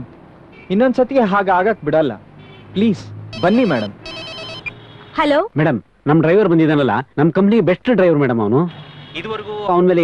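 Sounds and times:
electronic telephone ring: 3.3 - 5.0.

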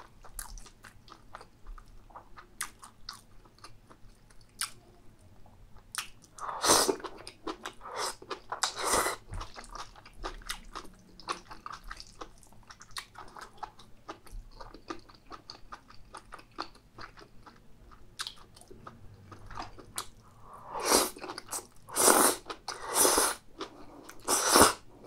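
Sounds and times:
mouth chewing food: 0.0 - 4.8, 5.8 - 24.8.

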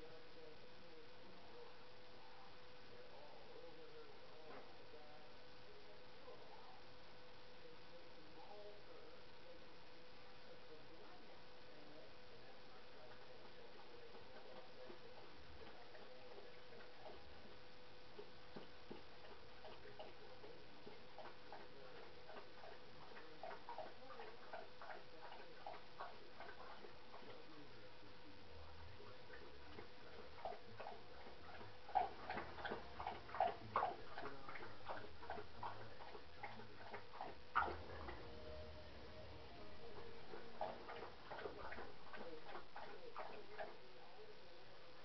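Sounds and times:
faint steady hum: 0.0 - 45.0.

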